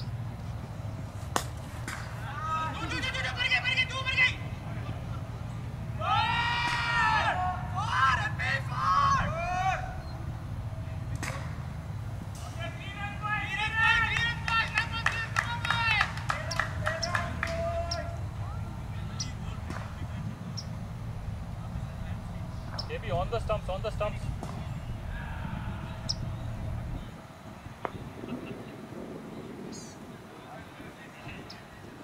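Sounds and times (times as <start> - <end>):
players shouting calls: 0.0 - 32.0
steady low rumble: 0.0 - 32.0.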